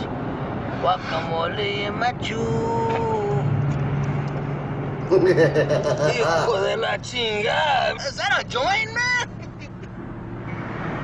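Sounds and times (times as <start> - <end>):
road noise hiss: 0.0 - 7.9
car engine drone: 0.0 - 11.0.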